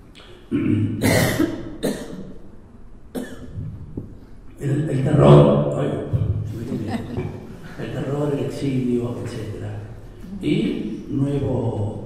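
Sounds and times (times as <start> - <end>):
person coughing: 0.5 - 2.2, 3.2 - 3.6.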